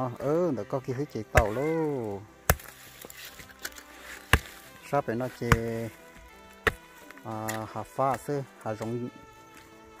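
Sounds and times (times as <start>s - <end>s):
hoe striking dry soil: 1.1s - 9.0s
person speaking: 1.2s - 2.3s.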